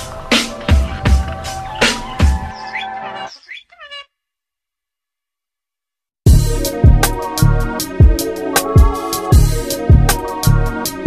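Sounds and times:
cat meowing: 0:03.2 - 0:04.2
instrumental beat: 0:06.3 - 0:11.0.

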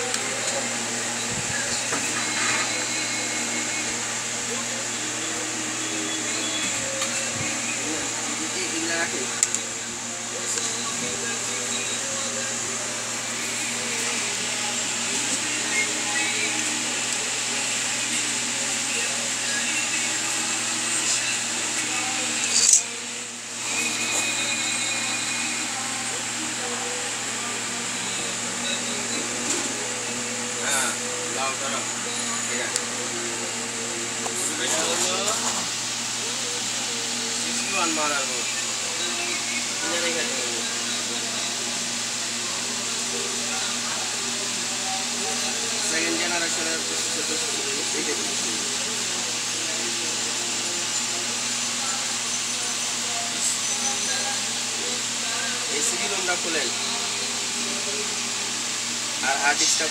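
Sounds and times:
faint voices: 0:00.0 - 0:59.9
fan-like background noise: 0:00.0 - 0:59.9.

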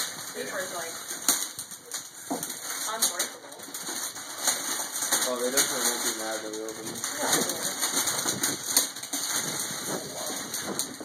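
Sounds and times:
foil gift wrap tearing and crinkling: 0:00.0 - 0:11.0
sharp crackle of foil: 0:00.0 - 0:11.0.

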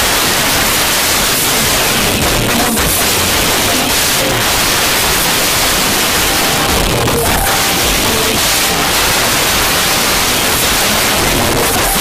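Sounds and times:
recording hiss: 0:00.0 - 0:12.0.

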